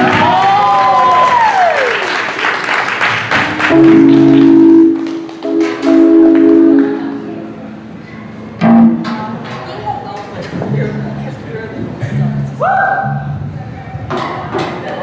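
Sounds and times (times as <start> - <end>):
audience applause and cheering: 0.0 - 6.6
sustained band chords: 3.4 - 8.0.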